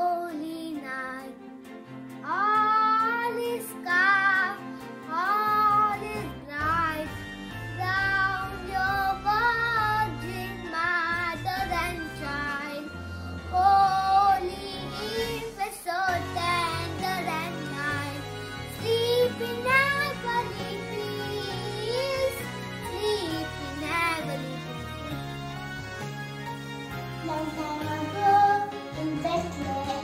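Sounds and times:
boy singing: 0:00.0 - 0:01.3, 0:02.2 - 0:07.1, 0:07.8 - 0:12.9, 0:13.5 - 0:18.2, 0:18.8 - 0:24.6
instrumental backing track: 0:00.0 - 0:30.0.

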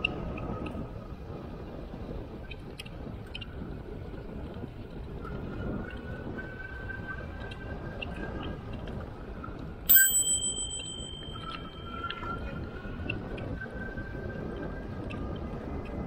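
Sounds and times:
bicycle bell ding: 0:09.9 - 0:12.7.

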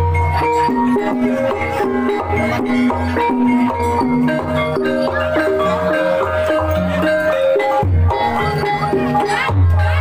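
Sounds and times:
struck keyed percussion melody: 0:00.0 - 0:10.0.

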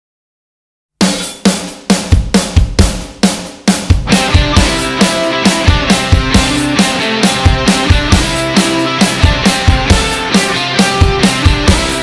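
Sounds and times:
rock drum kit: 0:01.0 - 0:12.0
electric guitars and bass chords: 0:04.0 - 0:12.0.

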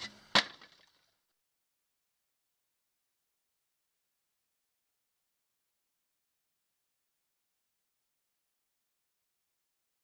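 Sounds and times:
sharp crack: 0:00.0 - 0:01.0.

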